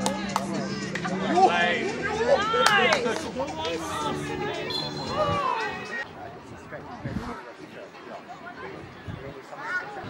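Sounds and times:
players shouting: 1.2 - 6.0.

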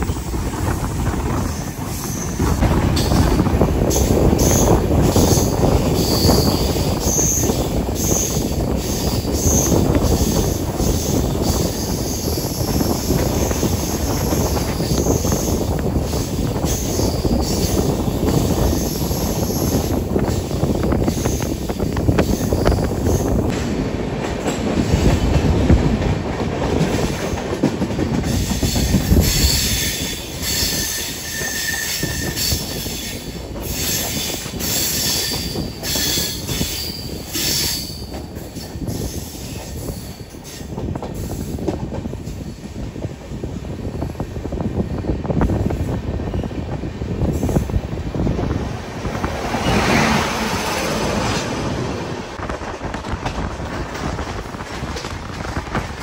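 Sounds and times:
train wheels rumbling on rail: 0.0 - 56.0
high-pitched wheel squeal: 28.6 - 38.1
clatter over track: 47.2 - 56.0.

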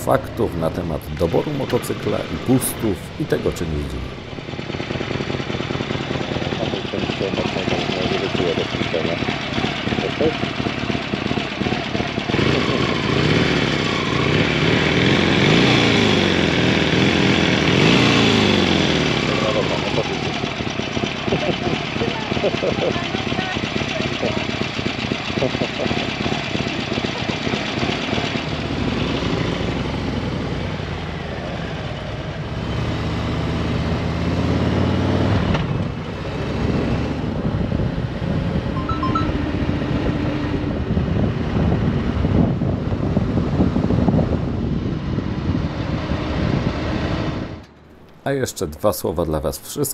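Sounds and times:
motorcycle engines revving: 0.0 - 48.4.

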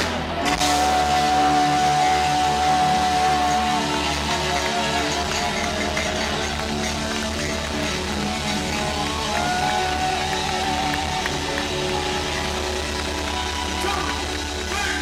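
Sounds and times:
drums: 0.0 - 15.0
electric bass: 0.0 - 15.0.

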